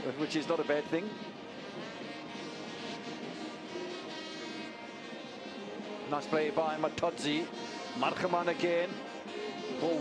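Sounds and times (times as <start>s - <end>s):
faint music: 0.0s - 10.0s
stadium crowd ambience: 0.0s - 10.0s.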